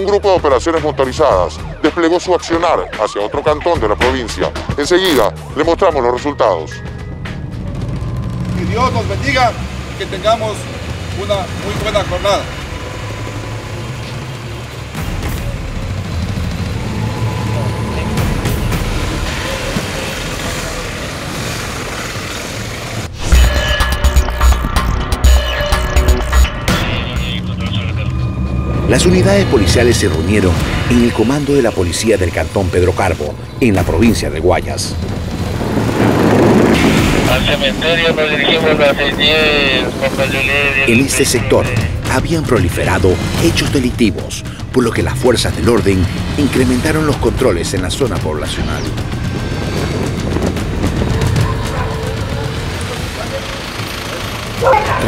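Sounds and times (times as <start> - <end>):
engines rumbling: 0.0 - 55.0
wind noise: 33.8 - 40.9, 48.5 - 53.2.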